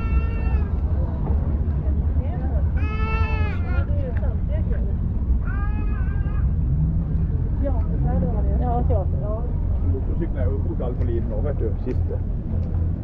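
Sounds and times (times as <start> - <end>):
high drawn-out cries: 0.0 - 0.8, 2.7 - 3.9, 5.4 - 6.7
steady low rumble: 0.0 - 13.0
people chatting: 0.3 - 2.8, 3.7 - 5.0, 7.6 - 12.2.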